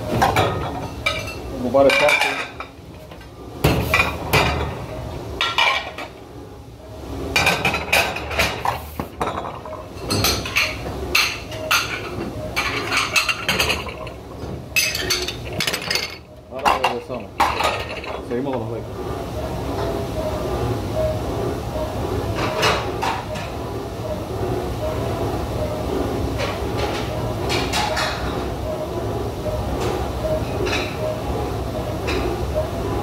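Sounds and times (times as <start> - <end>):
ceramic plates clinking: 0.2 - 2.7, 7.4 - 14.2, 14.8 - 18.3.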